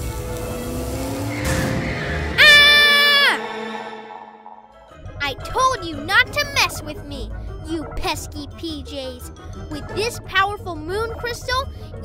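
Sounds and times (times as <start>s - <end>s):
hiss under rising tone: 0.0s - 4.9s
background music: 0.0s - 12.0s.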